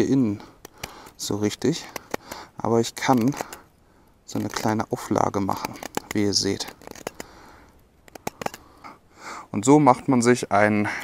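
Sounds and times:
knife cutting into wood: 0:04.3 - 0:07.4.

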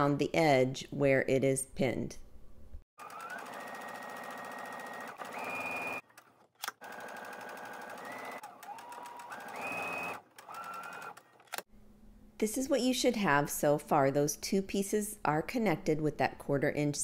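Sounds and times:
sewing machine motor whine: 0:03.0 - 0:06.0, 0:06.8 - 0:11.6.

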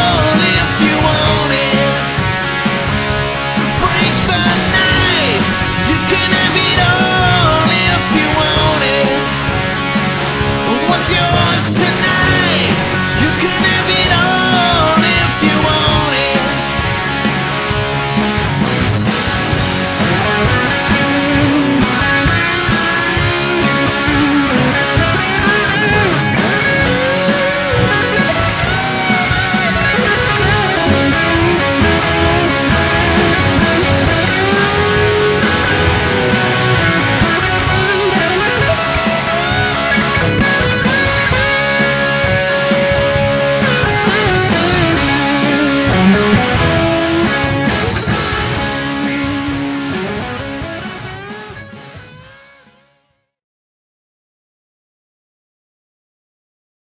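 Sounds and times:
lead electric guitar bending notes: 0:00.0 - 0:52.4
rock band with drums: 0:00.0 - 0:53.0.

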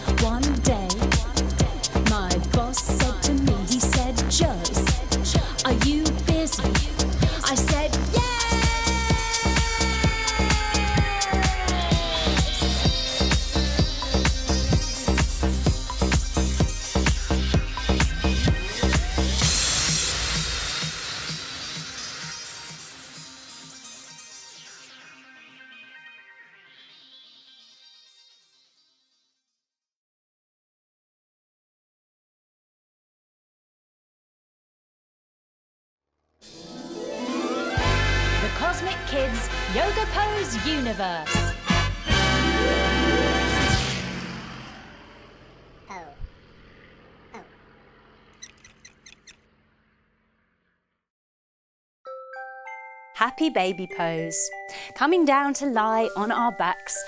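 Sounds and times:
electronic music hissing wash: 0:12.0 - 0:28.0
high squeaky cartoon chirps: 0:48.3 - 0:49.4.

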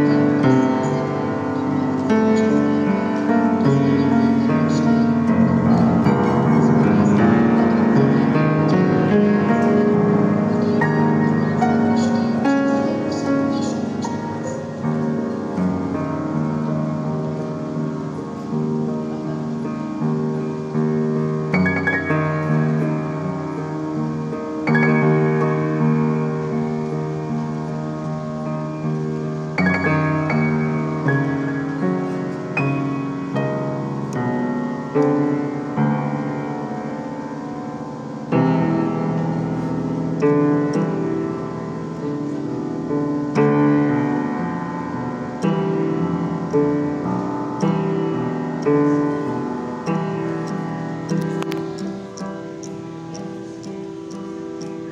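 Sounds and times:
upright piano chords: 0:00.0 - 0:54.9.

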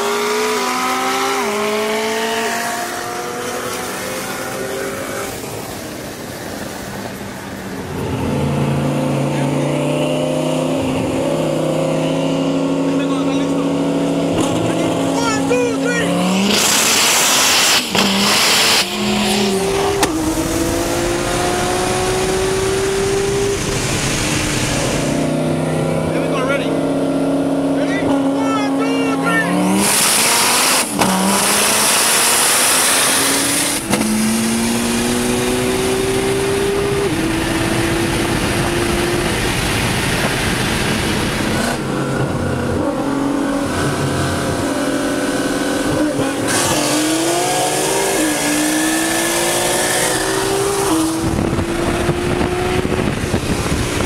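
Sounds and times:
car engine accelerating hard: 0:00.0 - 0:54.0
loud rushing noise: 0:16.1 - 0:26.4.

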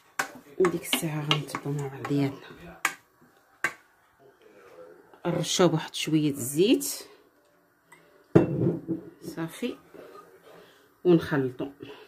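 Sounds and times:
utensil striking a dish: 0:00.0 - 0:03.0, 0:03.6 - 0:03.8.

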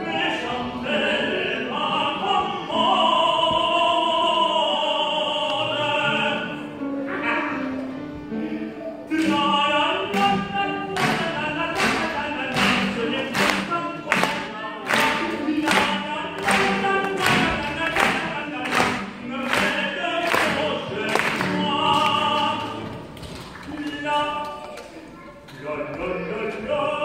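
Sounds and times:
opera singing with accompaniment: 0:00.0 - 0:27.0.

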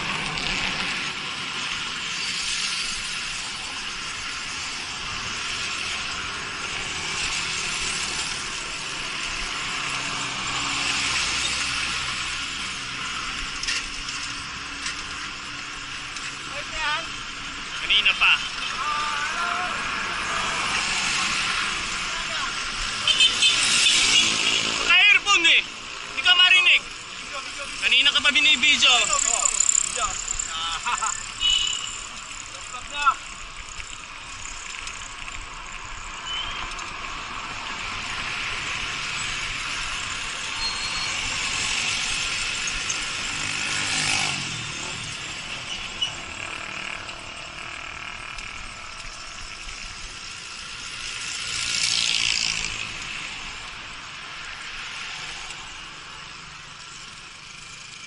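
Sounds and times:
motor vehicles passing: 0:00.0 - 0:58.0
road and traffic noise: 0:00.0 - 0:58.0.

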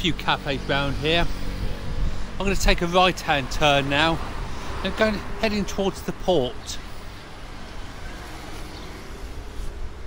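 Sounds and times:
road traffic hum: 0:00.0 - 0:10.0
wind rumbling on microphone: 0:00.9 - 0:05.4.

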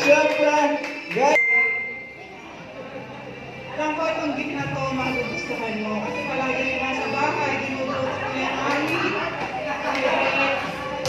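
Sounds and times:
bell-like ding: 0:01.4 - 0:02.3.

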